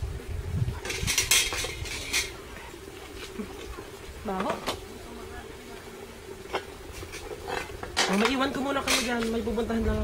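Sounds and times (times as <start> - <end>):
metal spoons clinking on pots: 7.1 - 9.4.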